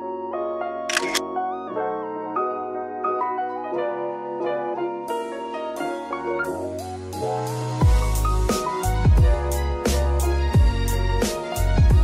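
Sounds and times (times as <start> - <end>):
background piano music: 0.0 - 12.0
camera shutter clicks: 0.9 - 1.2.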